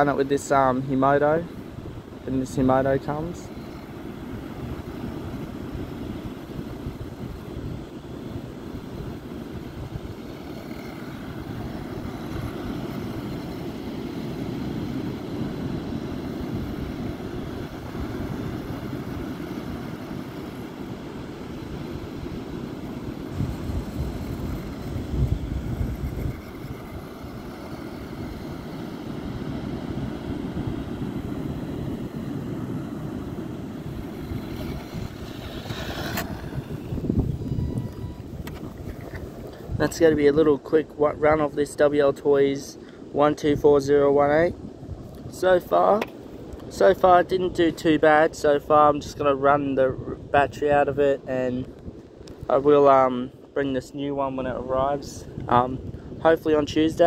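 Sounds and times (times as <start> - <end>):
ocean surf: 0.0 - 39.8
wind buffeting microphone: 0.0 - 41.8, 53.4 - 57.0
wind: 0.0 - 57.0.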